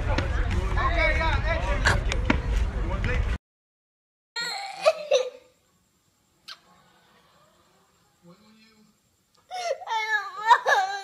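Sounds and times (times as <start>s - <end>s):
girl sobbing: 4.4s - 5.5s, 9.5s - 11.0s.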